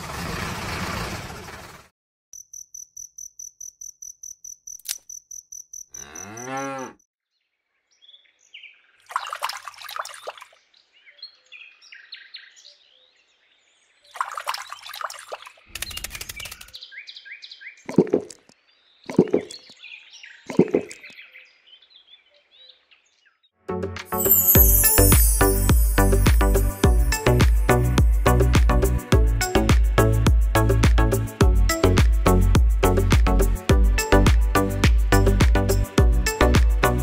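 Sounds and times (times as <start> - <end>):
cows mooing: 6.0 - 7.0
rapid high pulsing chirp: 24.2 - 28.4.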